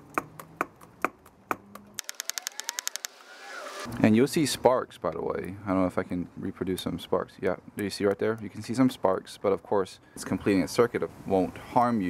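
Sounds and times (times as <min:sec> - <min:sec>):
socket ratchet clicking: 0:02.0 - 0:03.2
rising rushing noise: 0:02.1 - 0:03.9.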